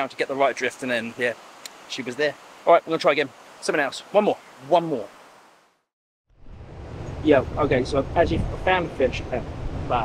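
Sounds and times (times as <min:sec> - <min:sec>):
low rumble: 0:06.3 - 0:10.0.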